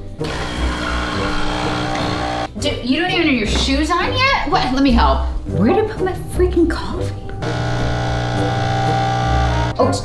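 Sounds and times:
espresso machine pump buzzing: 0:00.2 - 0:02.5, 0:07.4 - 0:09.8.

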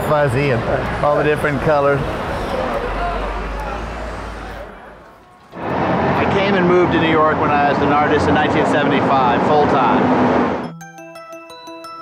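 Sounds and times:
faint voices of passers-by: 0:00.0 - 0:10.1
low traffic rumble: 0:00.0 - 0:10.7.

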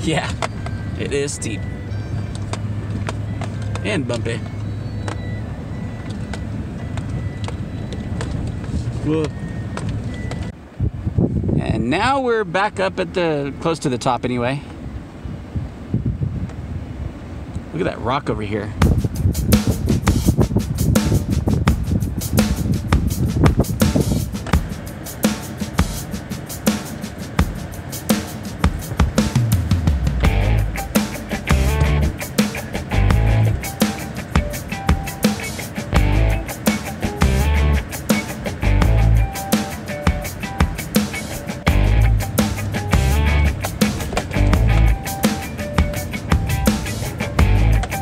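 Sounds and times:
deep bass notes: 0:18.7 - 0:24.3, 0:28.8 - 0:33.8, 0:35.9 - 0:39.4, 0:41.6 - 0:45.2, 0:45.8 - 0:48.0
background music with drum beat: 0:18.8 - 0:48.0.

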